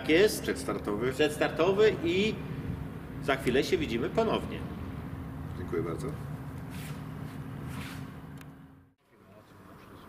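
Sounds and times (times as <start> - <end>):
faint outdoor background noise: 0.0 - 10.0
steady low hum: 0.0 - 10.0.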